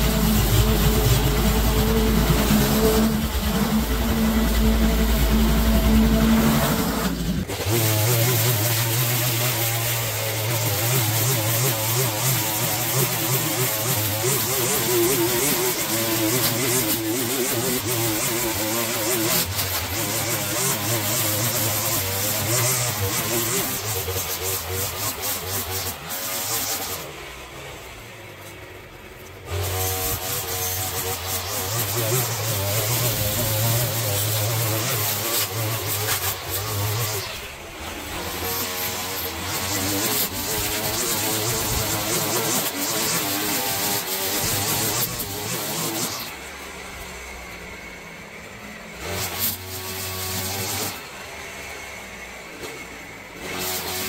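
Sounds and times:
string trimmer cutting grass: 0.0 - 54.0.

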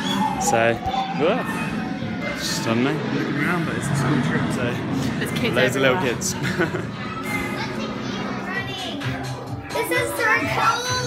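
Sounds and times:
children chattering and calling out: 0.0 - 11.0
music playing: 5.5 - 11.0.

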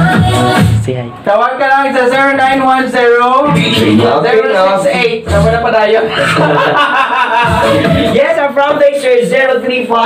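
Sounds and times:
man talking and chuckling: 5.3 - 8.3.

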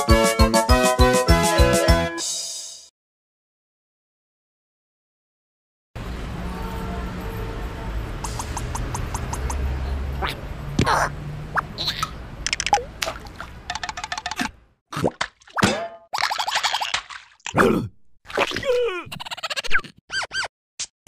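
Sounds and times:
quick run of clicks: 8.2 - 9.6, 12.4 - 14.6
squelchy plops: 8.2 - 17.6
cartoon character squeaks: 10.2 - 12.2, 18.9 - 20.5.

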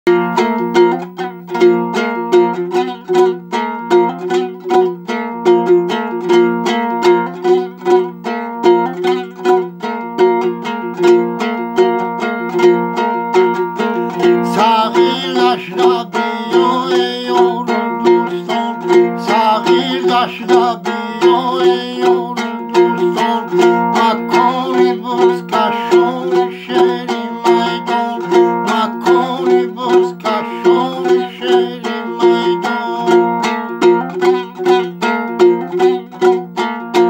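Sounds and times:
lute strumming: 0.1 - 37.0
man singing: 13.8 - 34.1.

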